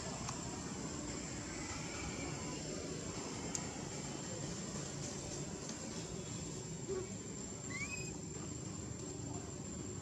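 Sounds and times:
outdoor background noise: 0.0 - 10.0
animal chirp: 7.7 - 8.2.

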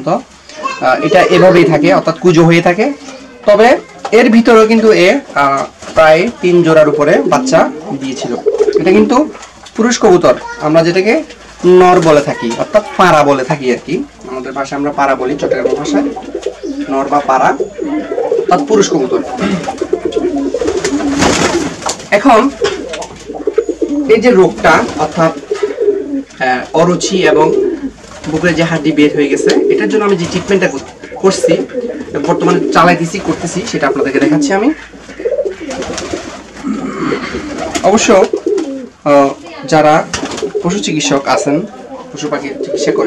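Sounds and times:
pigeons cooing: 0.0 - 4.9, 5.6 - 10.6, 14.0 - 39.0, 40.2 - 43.0
rustling burst: 19.2 - 23.9.

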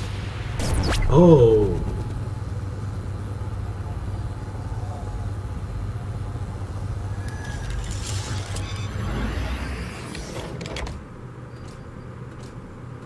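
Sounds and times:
low sci-fi rumbling drone: 0.0 - 10.3.

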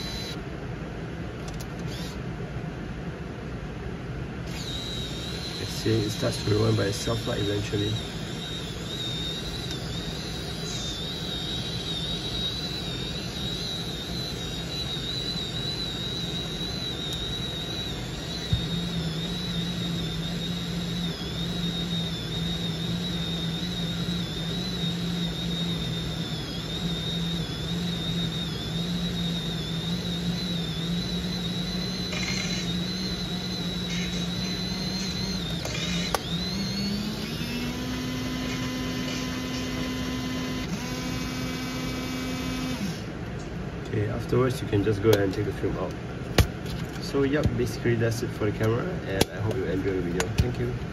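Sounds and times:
camera motor whirring: 0.0 - 0.4, 1.4 - 2.2, 4.4 - 43.2.

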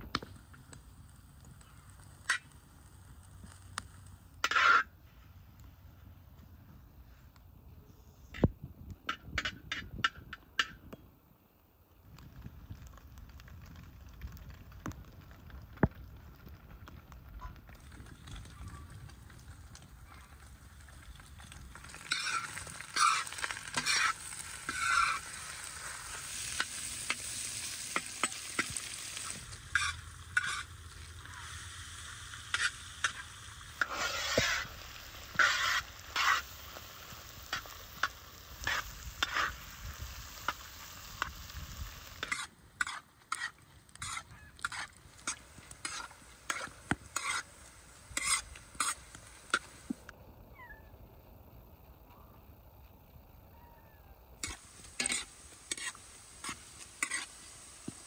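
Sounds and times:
fat sizzling in a pan: 0.0 - 5.2, 14.4 - 50.1, 54.3 - 58.0
metal spoon scraping a pan: 4.4 - 4.9, 21.8 - 31.6, 32.4 - 36.6, 37.4 - 39.6, 42.2 - 47.5, 48.1 - 49.7, 54.4 - 58.0.

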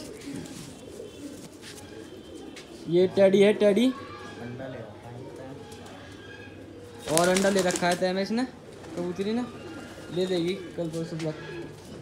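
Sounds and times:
faint pigeons cooing: 0.0 - 12.0.

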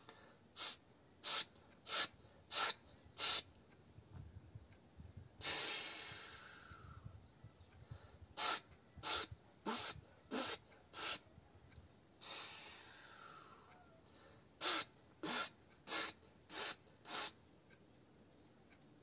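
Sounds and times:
person exhaling forcefully: 5.4 - 6.9, 12.2 - 13.6.

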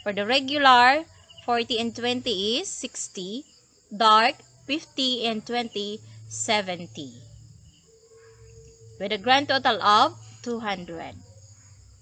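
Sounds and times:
thin steady tone: 0.0 - 12.0.

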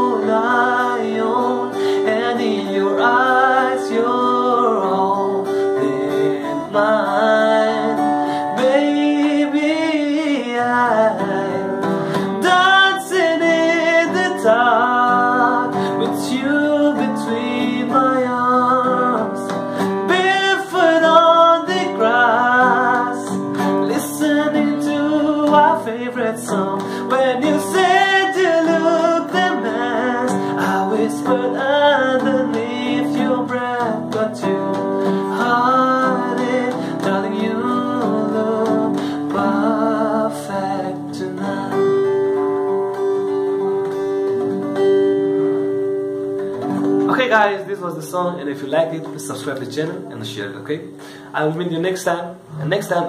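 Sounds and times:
man singing a slow ballad: 0.0 - 42.8
acoustic guitar: 0.0 - 53.0.

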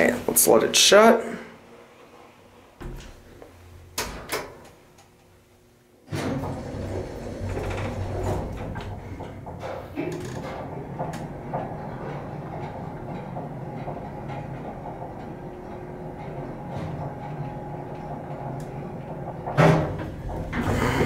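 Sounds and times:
elevator rumbling and humming: 1.6 - 5.5, 6.1 - 21.0.

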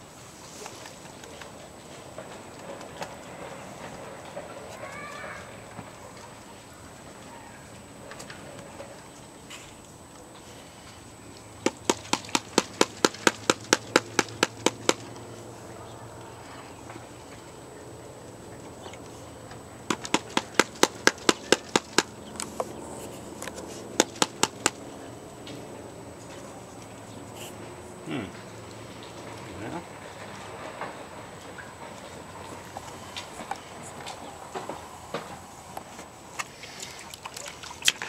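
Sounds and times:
rapid taps on plastic pan: 11.6 - 15.2, 19.9 - 22.2, 24.0 - 24.8.

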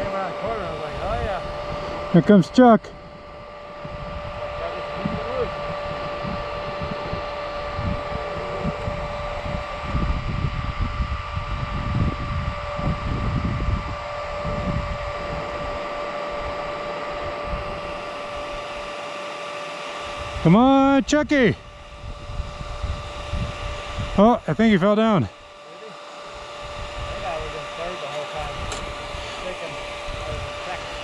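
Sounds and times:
wind buffeting microphone: 0.0 - 2.2, 2.9 - 18.9, 21.6 - 24.4, 26.4 - 27.6, 28.4 - 31.0
high-pitched whine: 0.0 - 31.0.

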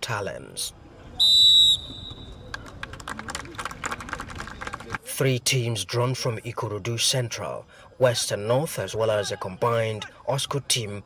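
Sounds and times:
scattered hand claps: 2.4 - 5.0.

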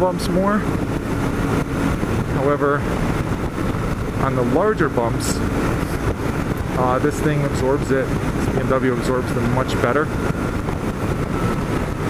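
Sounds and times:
motorcycle engine running: 0.0 - 12.0
road noise: 0.0 - 12.0
wind noise: 0.0 - 12.0.

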